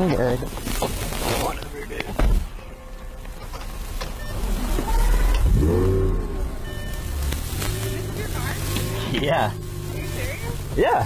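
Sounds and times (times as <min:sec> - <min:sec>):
sports car engine revving and idling: 0:04.2 - 0:11.0.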